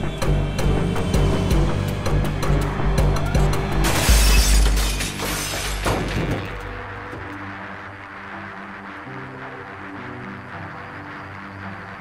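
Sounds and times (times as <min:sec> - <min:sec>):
film score music: 0:00.0 - 0:12.0
glass shattering: 0:03.8 - 0:06.6.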